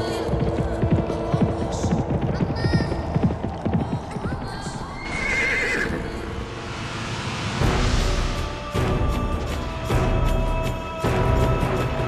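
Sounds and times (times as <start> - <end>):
horse whinnying: 5.0 - 6.2.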